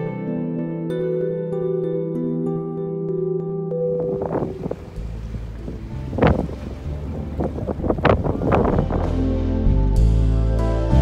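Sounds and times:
background music: 0:00.0 - 0:11.0
boat engine rumble: 0:03.7 - 0:11.0
water: 0:03.9 - 0:11.0
wind gusting on microphone: 0:04.0 - 0:09.7.

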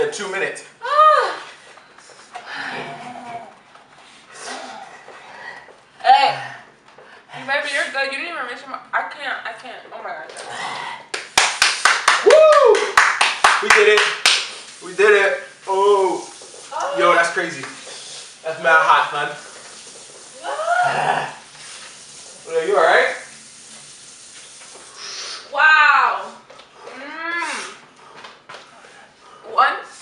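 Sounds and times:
man clapping hands: 0:11.1 - 0:14.6
faint steady hiss: 0:13.0 - 0:26.5.

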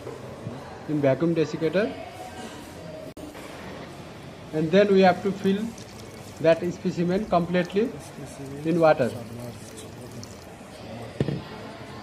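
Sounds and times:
water pouring into plastic tub: 0:05.1 - 0:07.9, 0:08.6 - 0:10.6.

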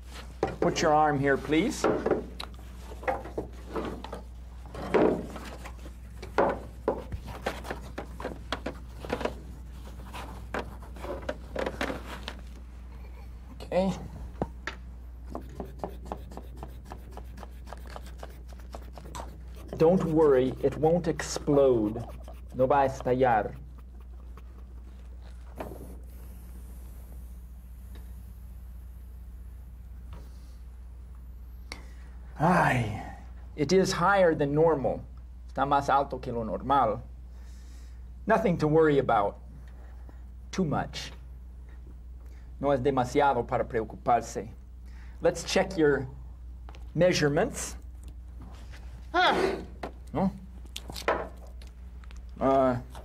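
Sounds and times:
low electrical hum: 0:00.0 - 0:53.0
loud handling sounds: 0:01.8 - 0:12.7.

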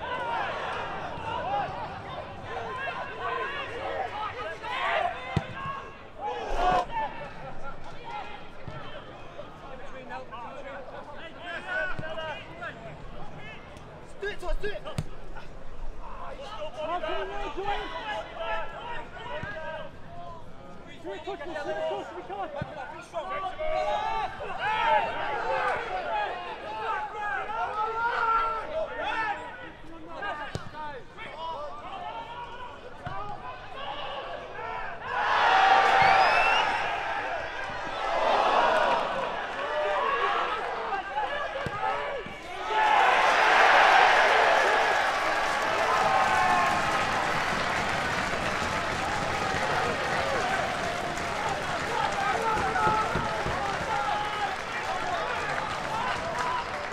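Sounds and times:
crowd and players shouting: 0:00.0 - 0:20.3, 0:20.9 - 0:56.9
crowd roar: 0:33.8 - 0:56.9
crowd cheering and applauding: 0:42.6 - 0:56.9.

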